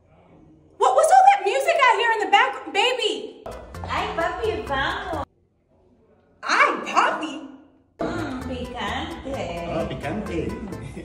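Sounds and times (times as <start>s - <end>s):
music with steady bass: 3.5s - 5.2s, 8.0s - 11.0s.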